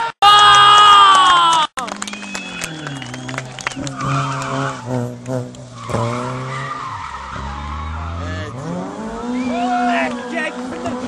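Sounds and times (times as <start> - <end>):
car engine revving: 1.8 - 11.0.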